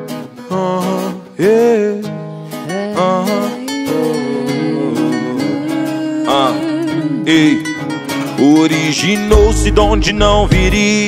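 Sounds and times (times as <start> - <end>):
acoustic guitar strumming: 0.0 - 11.0
person singing: 0.4 - 11.0.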